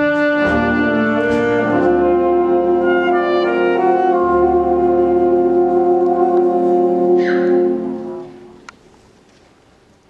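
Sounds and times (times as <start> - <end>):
alto saxophone lead: 0.0 - 8.7
jazz big band ballad: 0.0 - 8.8.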